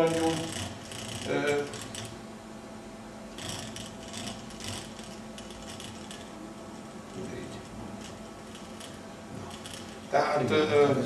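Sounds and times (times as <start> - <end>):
steady low hum: 0.0 - 11.0
small motor whirring: 3.4 - 6.3.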